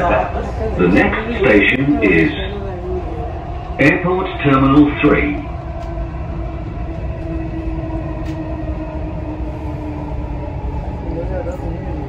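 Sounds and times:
train low rumble: 0.0 - 12.0.

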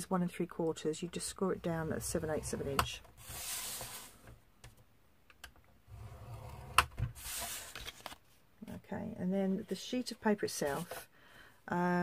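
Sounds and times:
stylus scraping plastic board: 1.6 - 4.3, 5.9 - 7.8.

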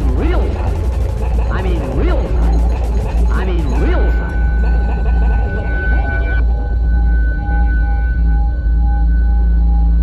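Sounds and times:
heavy low drone: 0.0 - 10.0.

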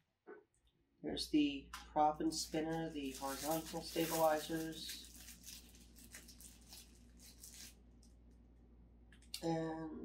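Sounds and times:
low room hum: 0.0 - 10.0
plastic bags crinkling: 2.3 - 8.3.

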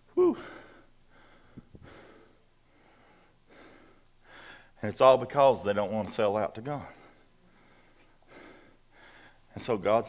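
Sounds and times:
man breathing softly: 0.3 - 4.8, 6.9 - 9.5
man speaking: 4.8 - 7.1, 9.5 - 10.0.

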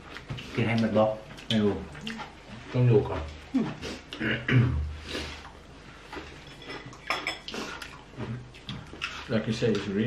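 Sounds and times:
cutlery clinking and scraping plates: 6.2 - 7.9.

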